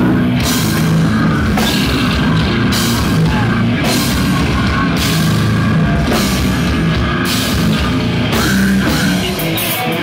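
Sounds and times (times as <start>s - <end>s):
death metal band playing: 0.0s - 10.0s.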